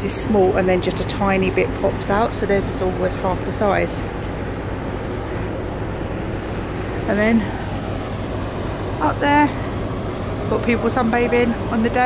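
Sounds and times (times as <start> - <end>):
low hum: 0.0 - 12.0
sea washing along ship: 0.0 - 12.0
wind rushing over microphone: 0.0 - 12.0.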